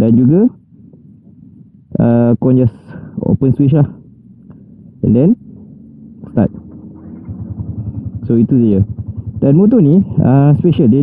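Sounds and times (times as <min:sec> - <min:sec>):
motorcycle engine starting and idling: 0:04.0 - 0:11.0.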